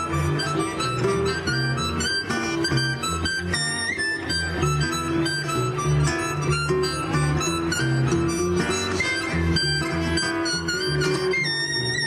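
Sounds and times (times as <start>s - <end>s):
harmonica playing lead: 0.0s - 12.0s
harp guitar chords and bass: 0.0s - 12.0s.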